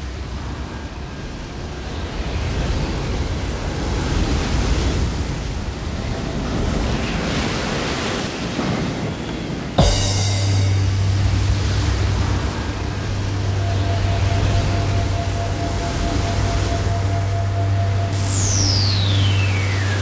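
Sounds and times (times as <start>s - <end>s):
ocean surf washing: 0.2s - 20.0s
low bass note: 9.8s - 20.0s
sharp hit: 9.8s - 20.0s.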